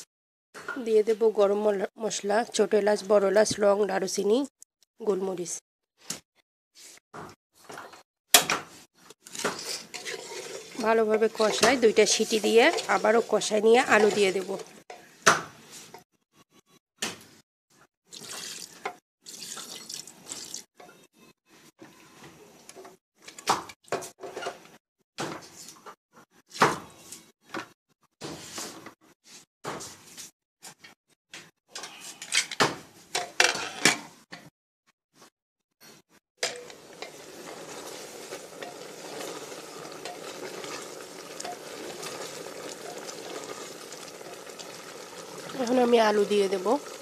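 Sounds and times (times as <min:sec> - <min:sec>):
curry sizzling: 0:09.0 - 0:16.0, 0:18.1 - 0:20.7, 0:36.4 - 0:47.0
water splashing in a pot: 0:09.2 - 0:14.8, 0:18.1 - 0:20.7, 0:36.4 - 0:47.0
spatula tapping and scraping pot: 0:09.2 - 0:15.1
water pouring into a pot: 0:09.9 - 0:14.8, 0:18.1 - 0:20.7, 0:36.6 - 0:47.0.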